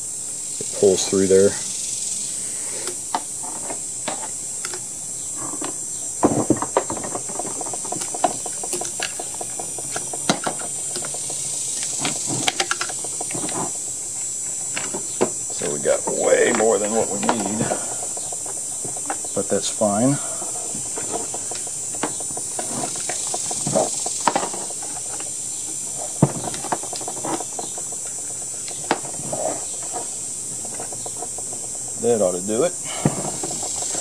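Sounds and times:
high insect buzz: 0.0 - 34.0.

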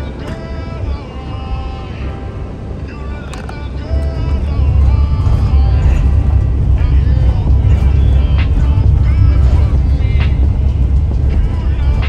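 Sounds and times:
music with singing: 0.0 - 12.0
van road and engine rumble: 0.0 - 12.0.

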